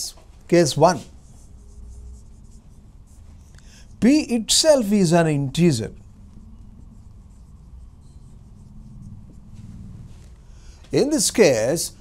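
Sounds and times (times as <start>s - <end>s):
marker pen writing on whiteboard: 0.5s - 4.4s, 5.9s - 11.6s.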